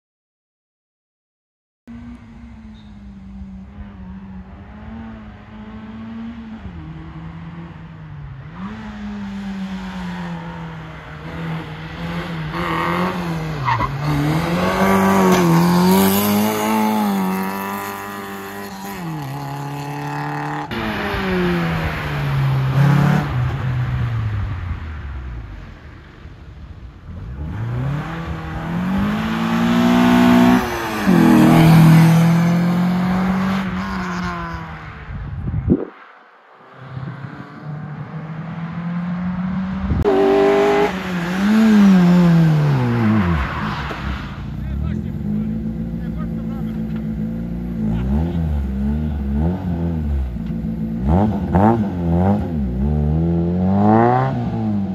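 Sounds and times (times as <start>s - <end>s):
race car engine revving: 3.6s - 24.1s, 27.1s - 35.1s, 36.6s - 54.9s.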